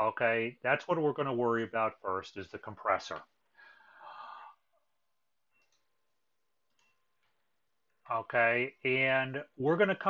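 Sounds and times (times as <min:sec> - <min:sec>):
faint mouse click: 0:05.5 - 0:06.0, 0:06.7 - 0:07.4.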